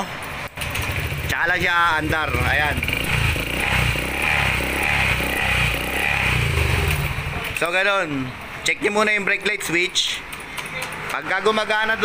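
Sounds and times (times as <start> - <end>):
scooter engine idling: 0.6 - 7.6.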